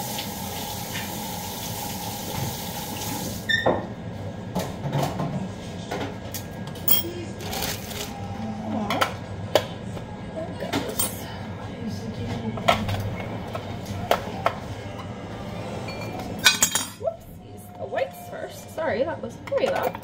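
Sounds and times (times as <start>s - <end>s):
dishes and utensils clinking: 10.7s - 11.3s, 15.8s - 17.0s, 19.4s - 20.0s.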